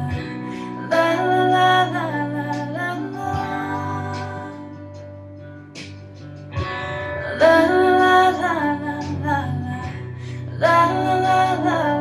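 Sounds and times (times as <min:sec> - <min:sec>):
woman singing wordless melody: 0:00.0 - 0:05.2, 0:07.1 - 0:12.0
country ballad backing track with guitar: 0:00.0 - 0:12.0.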